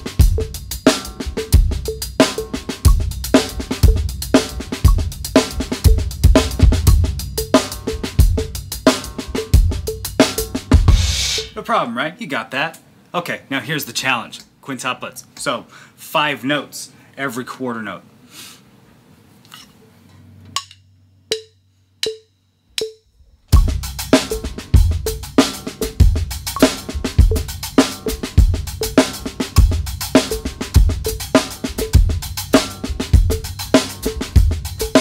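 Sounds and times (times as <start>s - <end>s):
drum kit groove: 0.0s - 11.7s, 22.8s - 35.0s.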